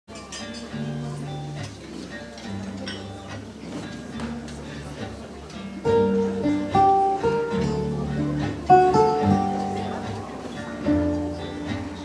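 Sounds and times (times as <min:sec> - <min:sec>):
plucked acoustic guitar: 0:00.1 - 0:12.0
double bass notes: 0:04.1 - 0:12.0.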